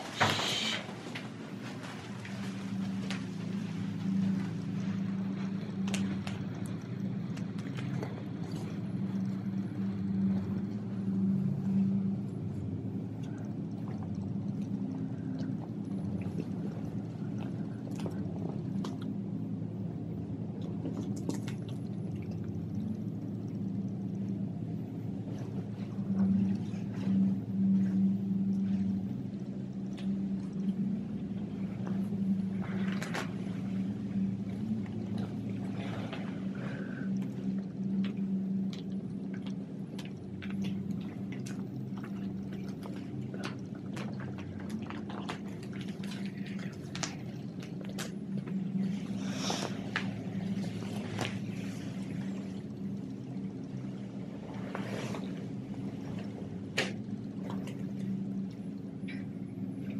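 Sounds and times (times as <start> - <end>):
vinyl crinkling and rustling: 0.0 - 8.8
low steady hum: 0.0 - 59.9.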